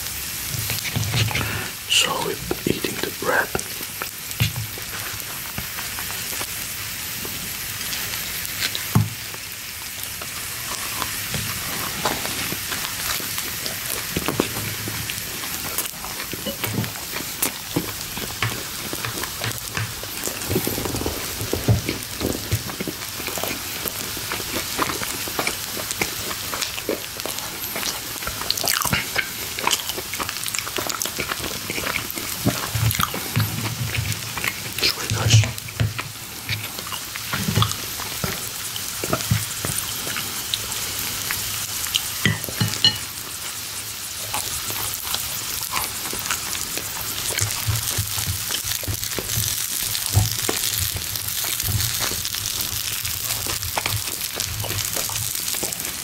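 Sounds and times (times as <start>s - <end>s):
food sizzling on a grill plate: 0.0s - 56.0s.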